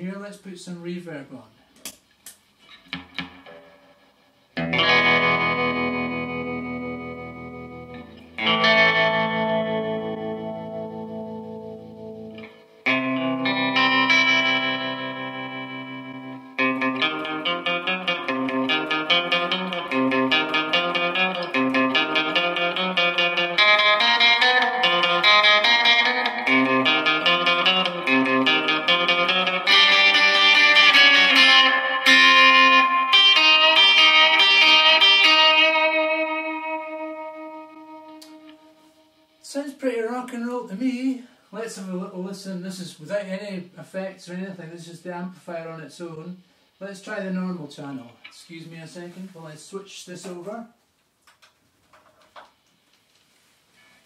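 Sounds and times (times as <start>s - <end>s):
electric guitar rhythmic picking: 2.6s - 39.4s
electric guitar strummed chords: 2.9s - 39.4s.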